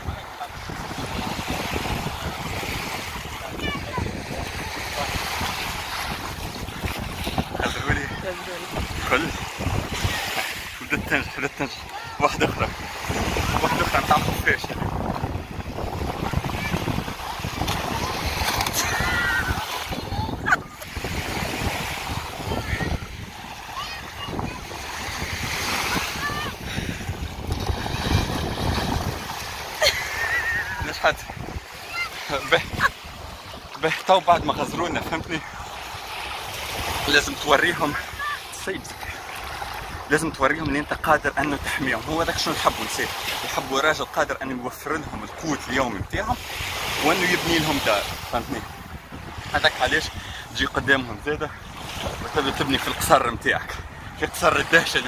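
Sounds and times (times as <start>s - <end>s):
wind buffeting microphone: 0.0s - 40.1s, 46.0s - 54.4s
small waves lapping: 0.0s - 55.0s
feet splashing through water: 4.5s - 10.8s, 15.4s - 30.8s
man talking: 9.0s - 9.4s, 10.8s - 12.8s, 13.5s - 14.8s, 32.2s - 32.7s, 33.8s - 35.5s, 37.0s - 39.1s, 40.1s - 46.4s, 47.0s - 48.7s, 49.4s - 51.6s, 52.2s - 55.0s
high wavering voice crying out: 18.8s - 20.8s.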